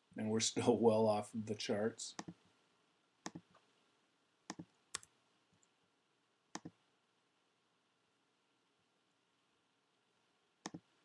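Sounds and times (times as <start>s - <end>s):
computer mouse button clicking: 2.2s - 2.4s, 4.5s - 5.1s.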